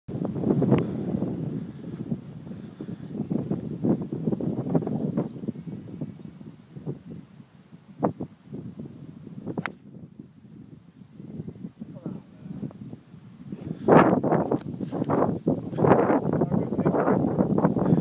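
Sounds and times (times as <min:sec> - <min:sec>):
low rumbling microphone noise: 0:00.1 - 0:18.0
golf driver striking ball: 0:09.6 - 0:09.9.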